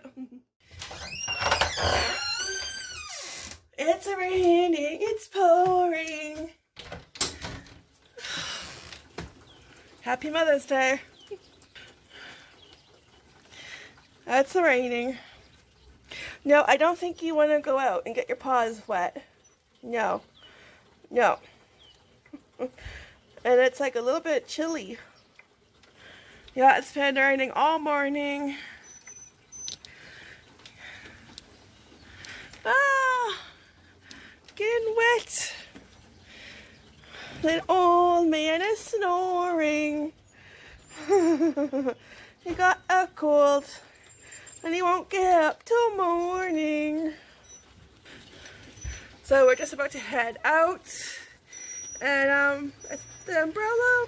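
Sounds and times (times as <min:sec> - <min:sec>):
door opening with long squeak: 0:00.7 - 0:04.4, 0:06.8 - 0:11.6, 0:28.7 - 0:29.8, 0:30.8 - 0:32.8, 0:35.2 - 0:36.6, 0:43.7 - 0:45.5, 0:46.3 - 0:50.1, 0:51.4 - 0:54.0
light rain patter: 0:02.4 - 0:54.0
raindrops ticking: 0:04.0 - 0:54.0.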